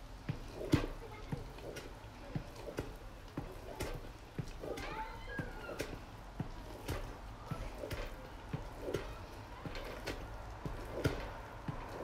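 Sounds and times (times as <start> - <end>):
wooden spatula stirring rice in pot: 0.0 - 12.0.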